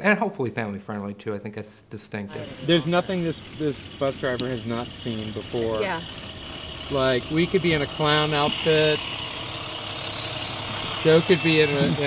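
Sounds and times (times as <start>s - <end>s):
bus driving past: 2.3s - 12.0s.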